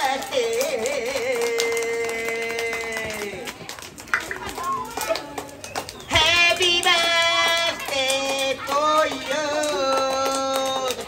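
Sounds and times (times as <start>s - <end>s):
child singing: 6.1s - 11.0s.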